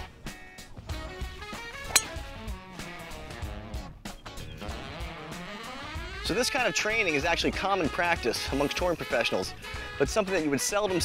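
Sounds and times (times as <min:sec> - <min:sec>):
golf club striking ball: 0:01.9 - 0:02.5.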